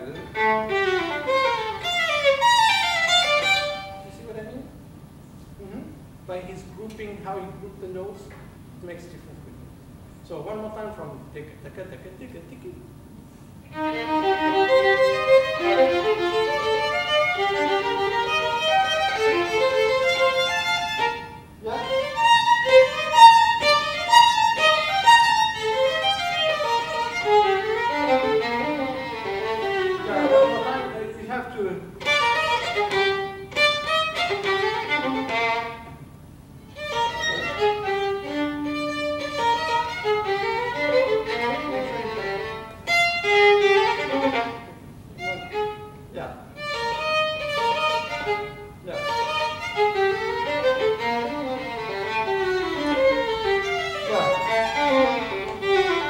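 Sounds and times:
violin playing rapid notes: 0.0 - 4.3, 13.7 - 46.0, 46.6 - 56.0.

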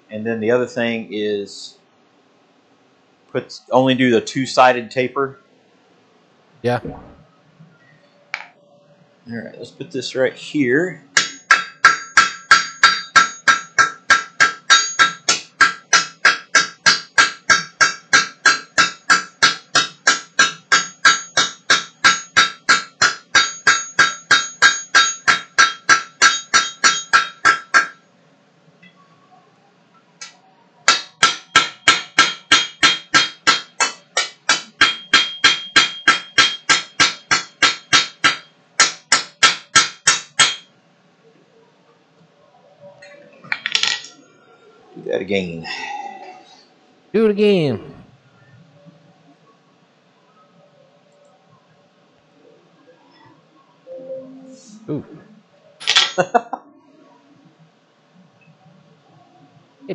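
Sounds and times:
hammer ringing on anvil: 11.2 - 28.0, 30.9 - 40.7.

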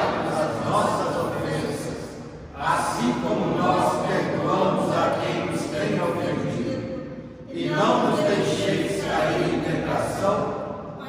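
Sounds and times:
group praying aloud in unison: 0.0 - 11.0.

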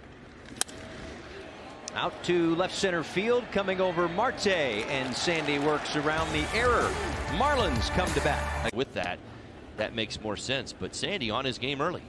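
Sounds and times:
faint ballpark ambience: 0.0 - 12.0.

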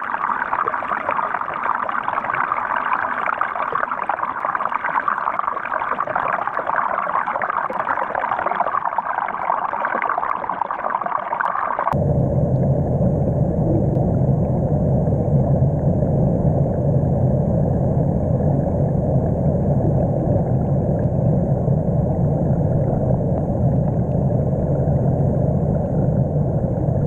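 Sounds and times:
dense low rumble: 12.0 - 27.0.

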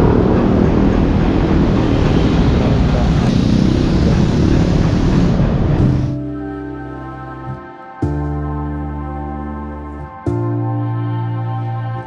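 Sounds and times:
road traffic rumble and hiss: 0.0 - 7.5.

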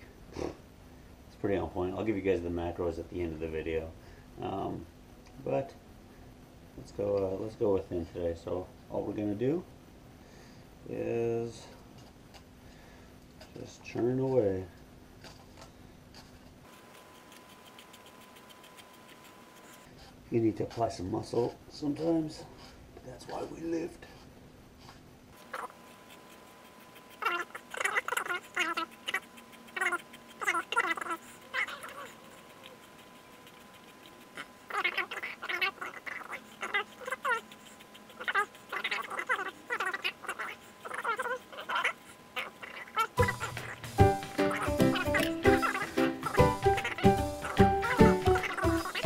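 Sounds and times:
zucchini squeaking in slicer: 25.4 - 49.0
background music with beat: 43.2 - 48.9.

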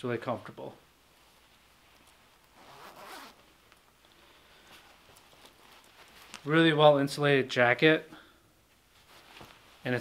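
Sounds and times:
zipper rasp: 2.6 - 3.4.

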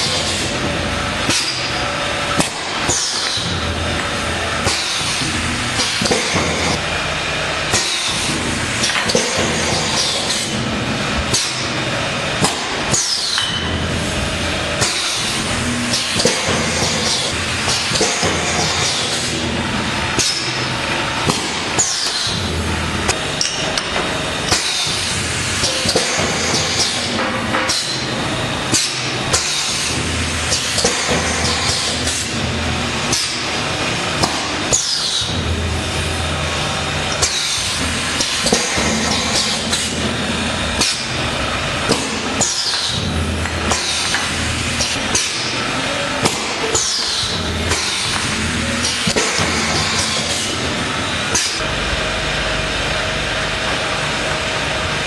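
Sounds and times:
filling machine running: 0.0 - 55.0.

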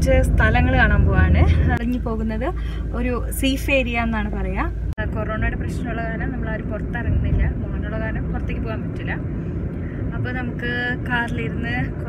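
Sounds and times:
woman talking: 0.0 - 9.2, 10.2 - 12.0
car road and engine noise: 0.0 - 12.0.

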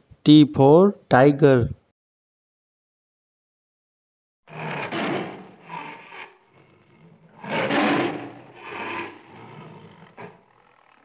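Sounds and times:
tiger growling and roaring: 4.5 - 11.0.

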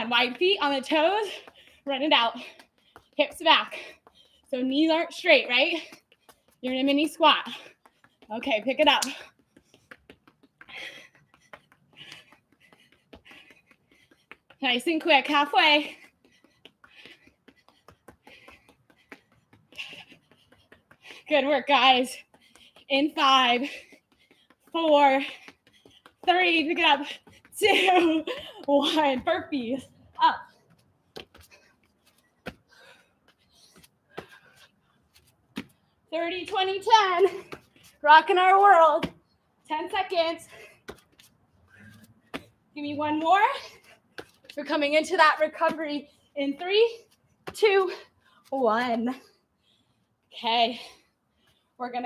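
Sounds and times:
feet tapping on exercise mat: 0.0 - 49.2
woman breathing hard: 9.2 - 14.6, 15.8 - 21.3, 22.2 - 22.9, 23.6 - 26.3, 31.3 - 35.1.

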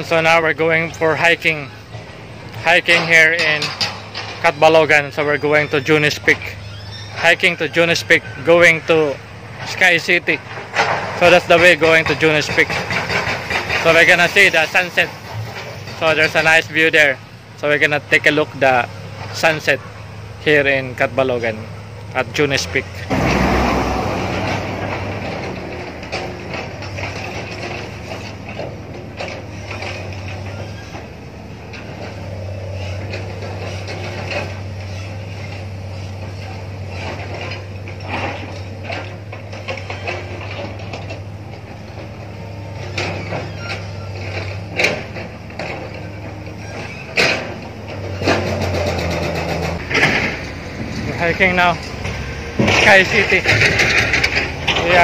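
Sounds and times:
sharp knocks and clanks: 0.0 - 17.2, 20.7 - 55.0
diesel engine droning: 0.0 - 55.0.

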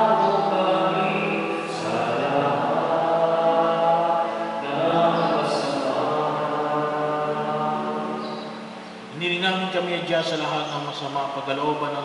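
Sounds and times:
voices holding a final chord: 0.0 - 12.0.

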